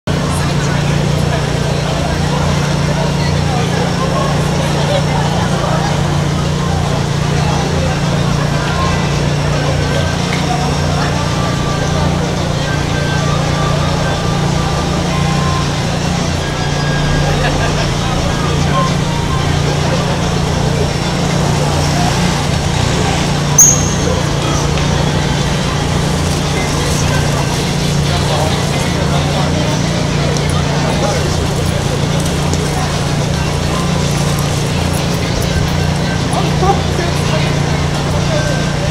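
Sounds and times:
crowd voices chattering: 0.0s - 38.9s.

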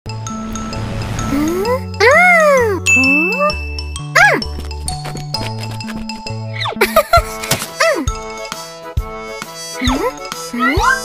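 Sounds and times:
cartoon music with bass: 0.1s - 11.0s.

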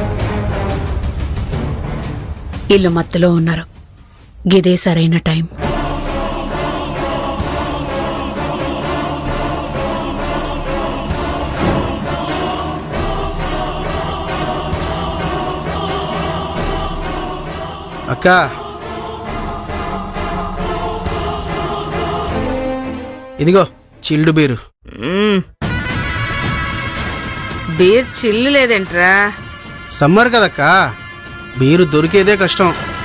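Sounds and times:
sustained choral voices: 5.6s - 23.4s.

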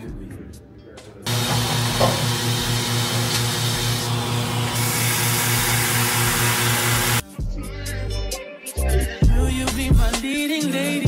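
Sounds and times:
hip-hop music: 0.0s - 2.0s, 7.2s - 11.0s
drill press and vacuum whirring: 1.3s - 7.2s.

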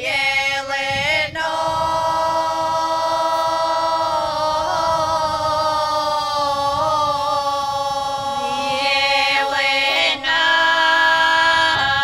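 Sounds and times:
women singing folk song unaccompanied: 0.0s - 12.0s.

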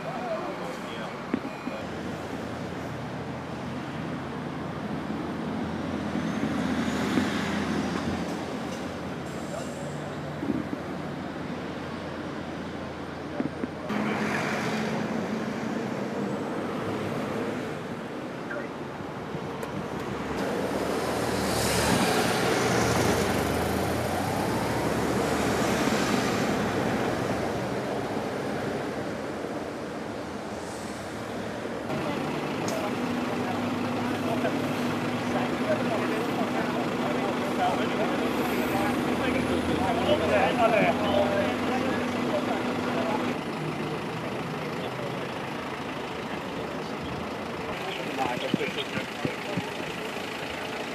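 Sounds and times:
car and lorry engines idling: 0.0s - 50.9s.

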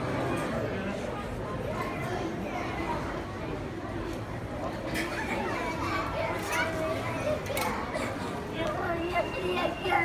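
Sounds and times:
background hubbub: 0.0s - 10.0s
people talking: 0.0s - 10.0s.

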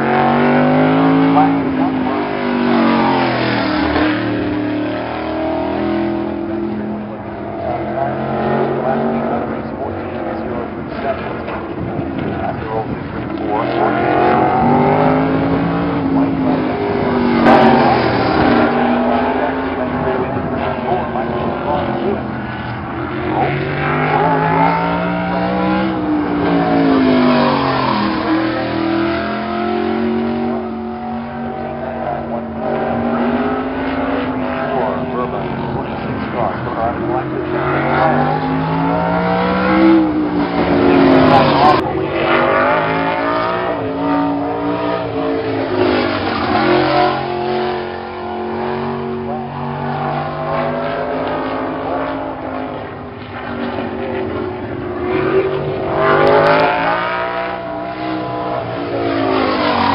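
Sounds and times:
race car engine: 0.0s - 59.9s.

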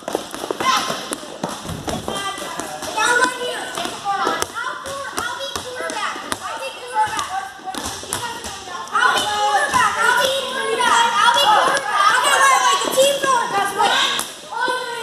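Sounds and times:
balls bouncing on floor: 0.0s - 10.5s
children shouting and chattering: 0.0s - 15.0s.

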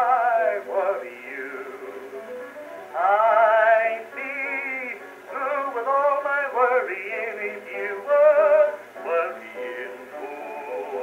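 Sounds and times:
man singing baritone: 0.0s - 2.3s, 2.9s - 11.0s
phonograph record playing: 0.0s - 11.0s.

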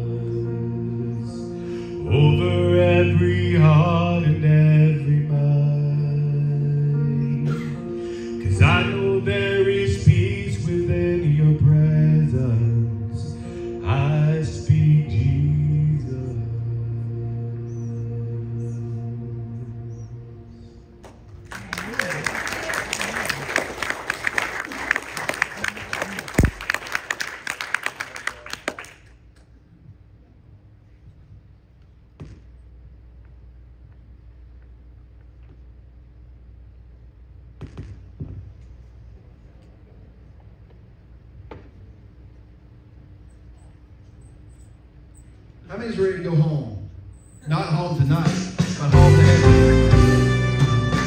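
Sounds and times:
male vocal group singing in harmony: 8.5s - 20.2s
congregation applauding: 21.0s - 29.2s.

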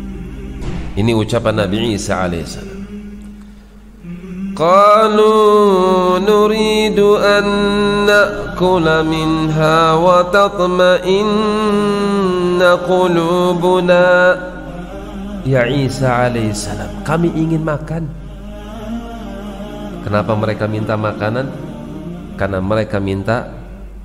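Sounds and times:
man chanting melodically: 0.0s - 3.2s, 4.0s - 24.0s.

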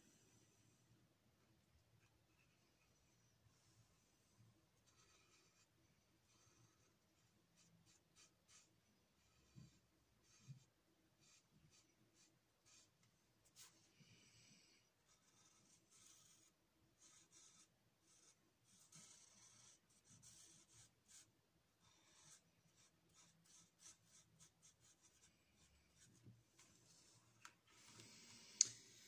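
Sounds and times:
marker rubbing on paper: 4.8s - 13.8s, 15.1s - 26.3s.

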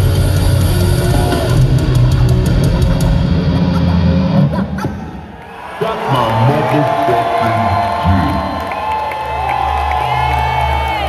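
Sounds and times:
crowd cheering and whooping: 0.7s - 2.1s, 5.3s - 11.0s.

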